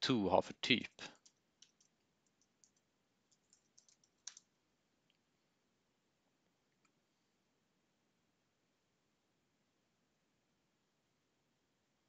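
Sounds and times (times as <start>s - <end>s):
faint keyboard keystrokes: 1.1s - 4.5s.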